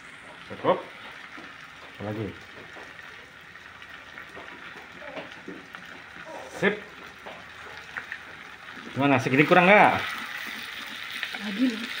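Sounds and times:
garlic sizzling in a frying pan: 0.0s - 12.0s.

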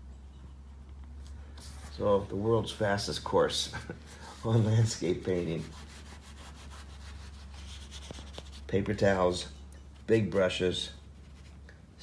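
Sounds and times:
paper towel rustling on paper: 1.5s - 2.6s, 3.7s - 9.1s.

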